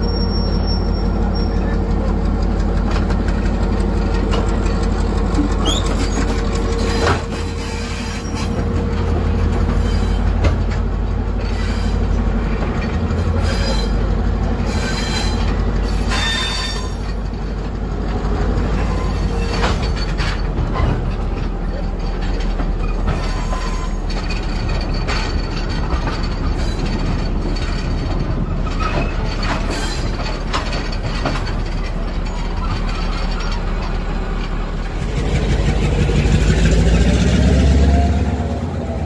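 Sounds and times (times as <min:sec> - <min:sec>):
high wheel squeal: 0:00.0 - 0:01.9, 0:05.5 - 0:08.8, 0:09.4 - 0:10.5, 0:11.4 - 0:12.2, 0:13.2 - 0:17.4, 0:18.6 - 0:21.0, 0:22.8 - 0:25.9, 0:26.5 - 0:34.1
train wheels rumbling on rails: 0:00.0 - 0:39.0.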